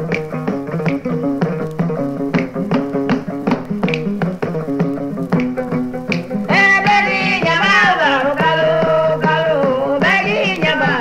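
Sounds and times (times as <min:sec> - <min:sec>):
plucked lute notes: 0:00.0 - 0:11.0.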